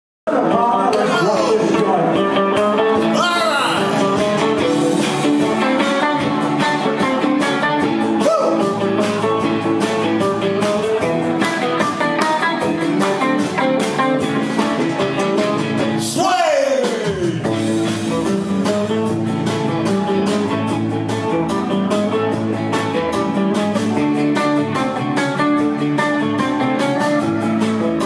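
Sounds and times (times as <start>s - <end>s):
live rock band playing: 0.3s - 28.0s
man singing lead: 3.0s - 4.4s, 16.0s - 17.6s.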